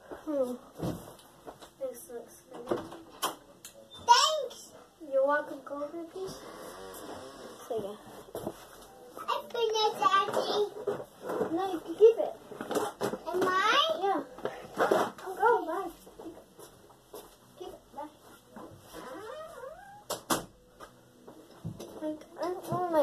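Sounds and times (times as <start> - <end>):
child talking: 4.0 - 6.4, 9.2 - 10.8, 11.4 - 12.4, 13.2 - 14.3, 15.2 - 16.3, 22.0 - 23.0.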